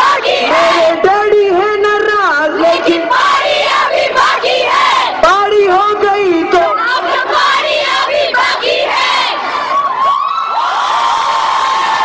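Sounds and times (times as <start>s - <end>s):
crowd singing and shouting: 0.0s - 10.1s
crowd cheering and screaming: 9.0s - 12.0s.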